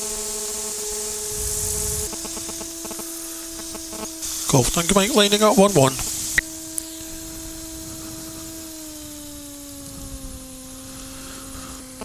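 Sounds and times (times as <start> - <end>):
aircraft engine humming: 0.0 - 12.0.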